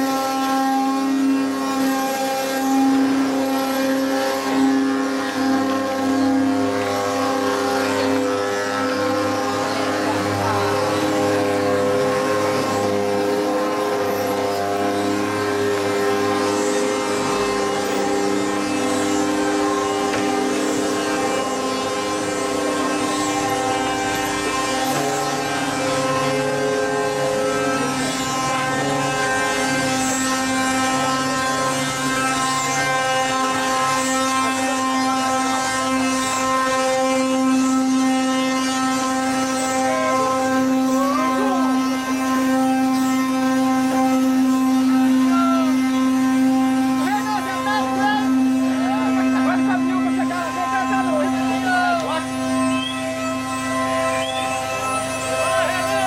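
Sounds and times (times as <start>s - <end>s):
wooden cart axles squealing: 0.0s - 56.0s.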